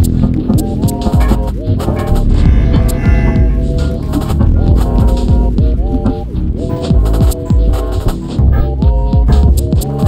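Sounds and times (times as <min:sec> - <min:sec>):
upright bass sliding low notes: 0:01.2 - 0:07.8
synthesizer held higher tones: 0:02.0 - 0:06.4.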